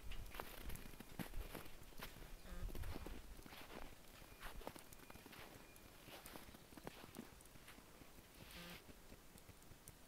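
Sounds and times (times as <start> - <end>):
footsteps in deep snow: 0.2 - 9.0.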